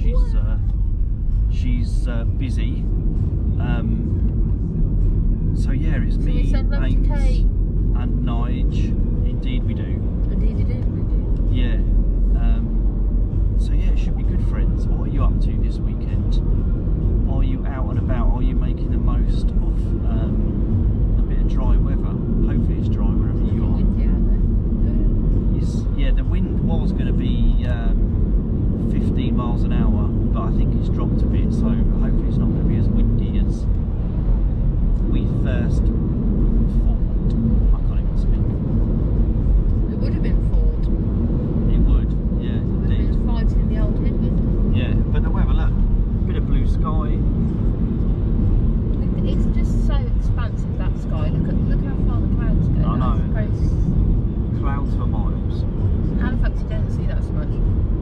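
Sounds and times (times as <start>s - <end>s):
voices talking: 0.0s - 0.7s, 3.6s - 4.0s, 5.6s - 11.8s, 12.4s - 12.7s, 13.6s - 16.4s, 17.2s - 20.4s, 21.2s - 28.0s, 28.8s - 33.6s, 41.7s - 47.2s, 49.0s - 53.8s, 54.6s - 55.6s, 56.2s - 57.6s
car road and engine rumble: 0.0s - 58.0s.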